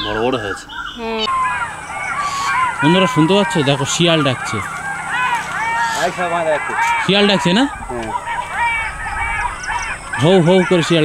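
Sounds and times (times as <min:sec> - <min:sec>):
flock of birds calling: 0:00.0 - 0:11.0.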